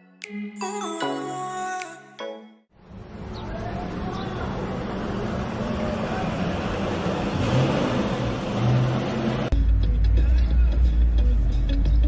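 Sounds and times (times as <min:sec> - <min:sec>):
street traffic noise: 0:02.7 - 0:12.0.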